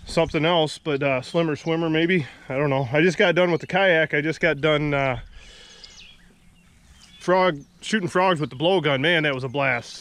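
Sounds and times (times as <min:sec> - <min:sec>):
faint bird chirps: 0:03.2 - 0:10.0.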